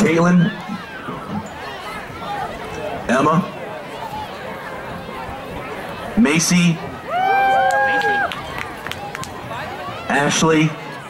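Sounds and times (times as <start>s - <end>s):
young voices cheering: 6.9s - 10.1s
scattered claps: 7.6s - 9.6s.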